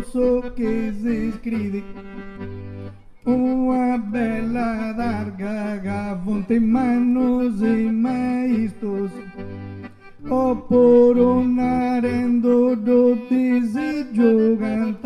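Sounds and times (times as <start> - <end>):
accordion music: 0.0 - 15.0.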